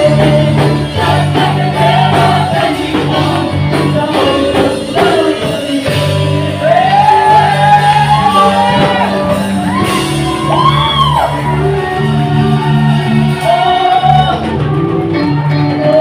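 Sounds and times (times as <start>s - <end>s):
man singing and shouting: 0.0s - 9.7s, 11.7s - 14.7s
backing singers: 0.0s - 16.0s
worship band playing: 0.0s - 16.0s.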